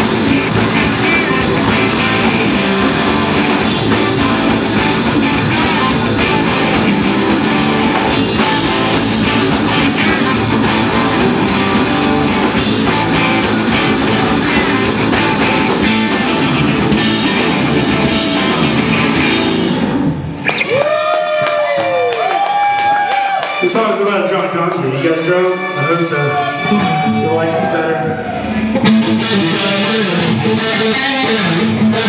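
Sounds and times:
distorted electric guitars: 0.0 - 21.7, 22.5 - 32.0
bass guitar: 0.0 - 23.5, 24.7 - 32.0
drum kit: 0.0 - 23.6.

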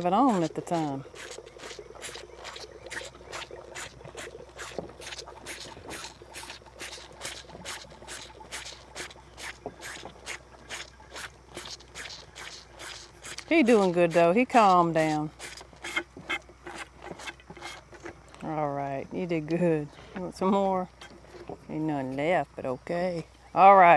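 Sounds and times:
cattle eating and sucking clicks: 0.0 - 18.5, 20.9 - 21.8.

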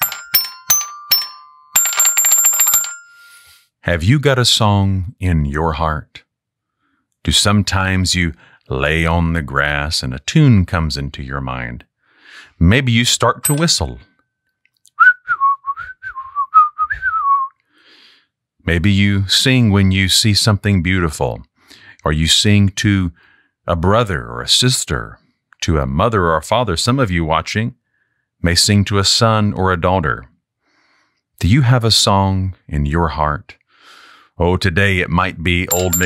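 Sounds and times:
toy xylophone notes: 0.0 - 3.4, 13.5 - 13.9, 35.7 - 36.0
person whistling a tune: 14.9 - 17.6.

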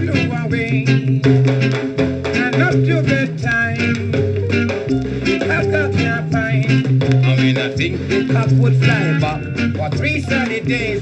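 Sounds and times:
ska band music on vinyl: 0.0 - 11.0.

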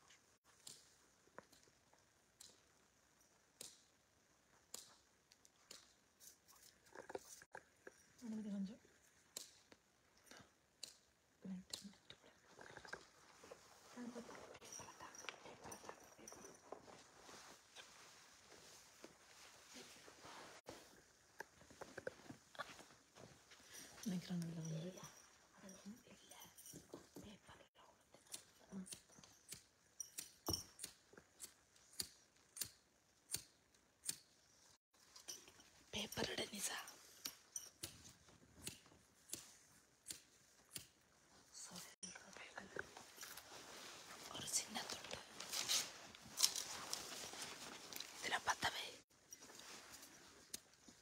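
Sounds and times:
faint clicks and rustles: 0.0 - 32.6, 33.6 - 51.0
person whispering: 41.6 - 43.0, 44.2 - 45.4, 48.2 - 49.0.

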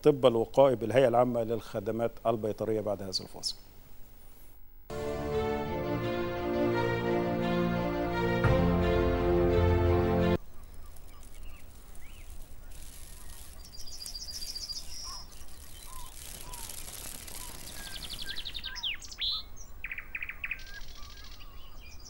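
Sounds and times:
outdoor background hiss: 0.0 - 22.0
theme music: 4.9 - 10.4
birdsong trills and chirps: 13.2 - 22.0.

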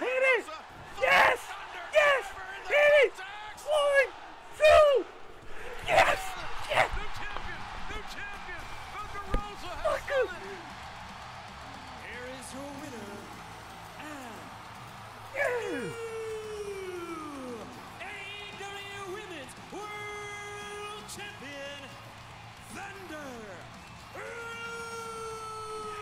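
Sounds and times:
man shouting excitedly: 0.0 - 5.2, 5.8 - 7.4, 9.6 - 10.6, 15.4 - 19.1, 19.8 - 21.3, 24.2 - 26.0
arena crowd cheering: 0.0 - 26.0.

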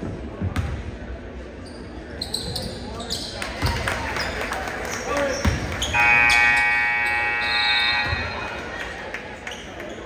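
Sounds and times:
scoreboard horn blast: 5.9 - 8.5.

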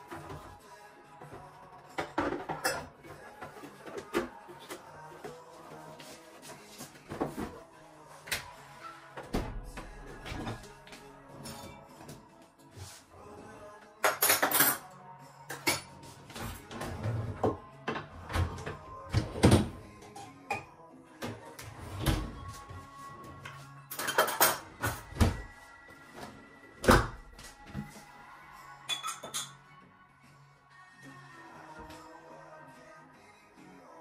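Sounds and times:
quiet background music: 0.0 - 34.0
cutlery and crockery clinking: 1.9 - 3.1, 14.0 - 16.0, 23.9 - 25.2, 28.9 - 29.6
drawers and cupboard doors: 15.6 - 20.3, 21.2 - 25.6.

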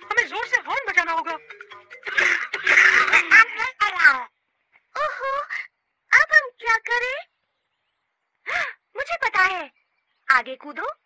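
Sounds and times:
dense burst of chatter: 1.4 - 4.1.

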